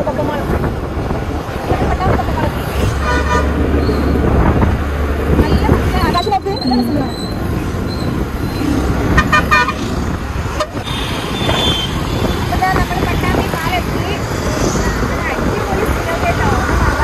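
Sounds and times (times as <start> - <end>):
road traffic: 0.0 - 17.0
wind and engine rumble: 0.0 - 17.0.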